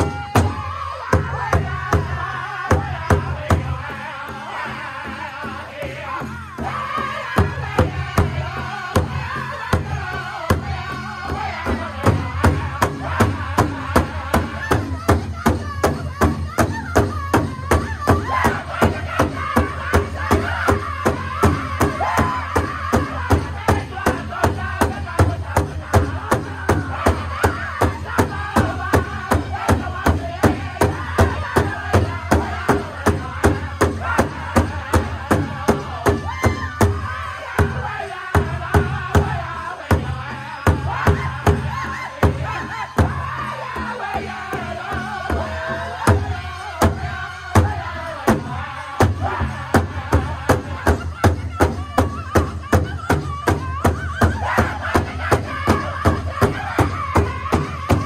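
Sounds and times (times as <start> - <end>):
group singing together: 0.0 - 58.0
large drum beating in unison: 0.0 - 58.0.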